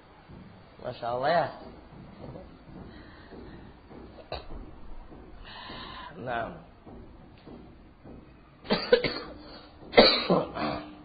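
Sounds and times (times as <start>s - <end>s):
person coughing: 8.7s - 11.0s.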